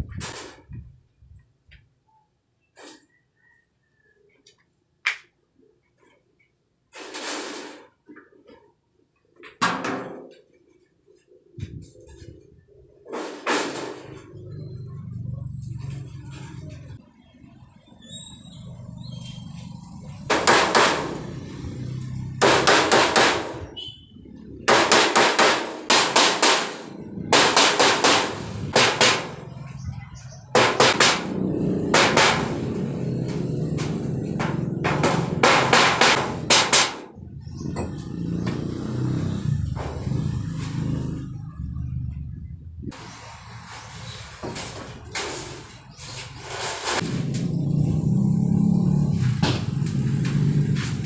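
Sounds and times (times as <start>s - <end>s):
hammer striking metal sheet: 13.1s - 14.2s, 20.2s - 21.4s, 22.4s - 23.7s, 24.7s - 29.5s, 30.5s - 38.0s.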